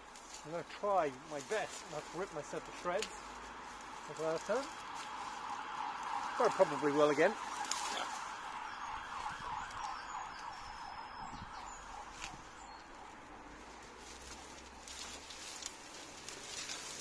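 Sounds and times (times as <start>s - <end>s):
steady background noise: 0.0s - 17.0s
twigs rustling: 0.0s - 17.0s.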